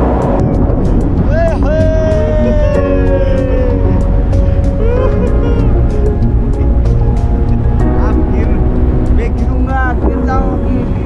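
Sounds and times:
background music: 0:00.0 - 0:11.0
wind rumble on microphone: 0:00.0 - 0:11.0.

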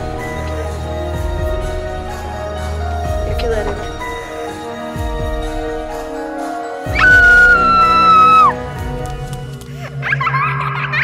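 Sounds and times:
background music: 0:00.0 - 0:11.0
high-pitched scream: 0:06.9 - 0:08.6.

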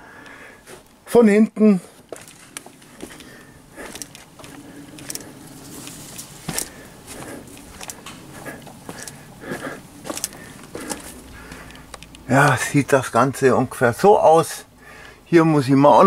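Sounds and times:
footsteps: 0:00.6 - 0:01.0, 0:01.9 - 0:12.1.

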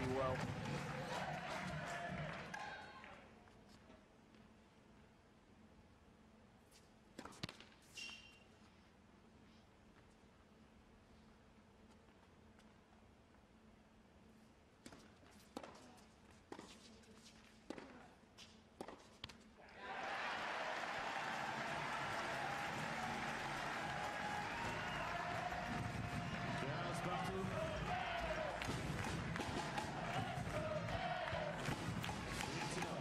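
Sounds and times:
crowd cheering and applauding: 0:00.0 - 0:03.2, 0:19.8 - 0:33.0
people shouting: 0:19.7 - 0:33.0.

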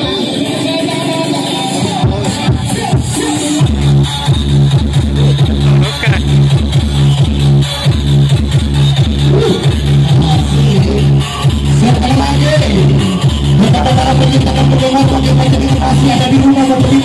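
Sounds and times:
loud electronic dance music: 0:00.0 - 0:17.0
heavy repeating bass note: 0:03.0 - 0:17.0.

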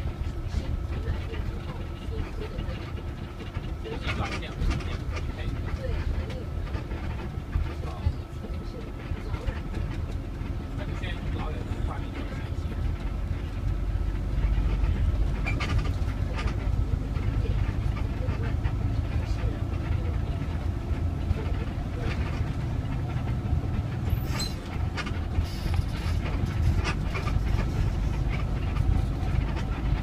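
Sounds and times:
bodywork rattles and clicks: 0:00.0 - 0:30.0
bus engine and road rumble: 0:00.0 - 0:30.0.

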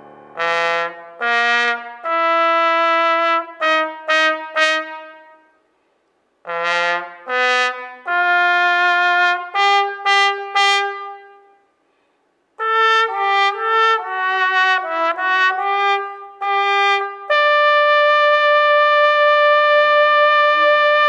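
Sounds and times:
alto trombone playing: 0:00.0 - 0:05.5, 0:06.5 - 0:11.6, 0:12.6 - 0:21.0.

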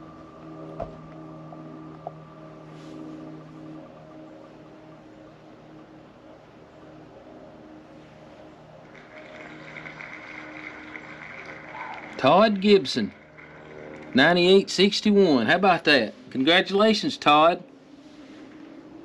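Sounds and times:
distant engine droning: 0:00.0 - 0:19.0
steady high buzz: 0:00.0 - 0:19.0.

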